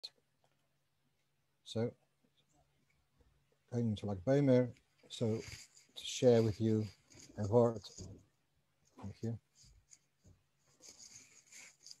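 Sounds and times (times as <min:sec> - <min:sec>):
faint rustling near microphone: 0:04.4 - 0:12.0.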